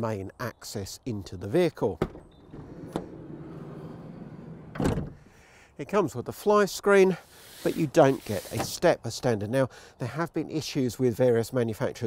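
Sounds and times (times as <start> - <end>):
sliding door rolling on runner: 2.4 - 5.2
door stopping with thump: 4.5 - 5.2.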